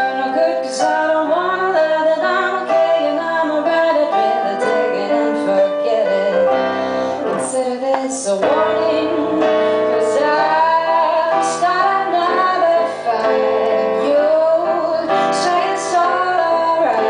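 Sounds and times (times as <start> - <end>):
instrumental accompaniment: 0.0 - 17.0
woman singing: 0.0 - 17.0.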